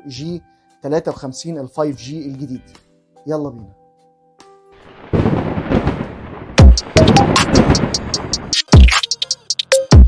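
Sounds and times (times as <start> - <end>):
music: 0.0 - 5.1, 6.5 - 10.0
thunder rumble: 4.8 - 8.6.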